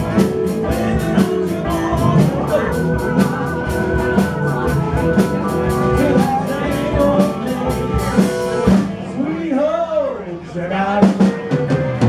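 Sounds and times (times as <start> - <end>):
drum kit: 0.0 - 9.2, 11.0 - 12.0
live rock band playing: 0.0 - 9.4, 10.9 - 12.0
person singing: 0.0 - 10.1.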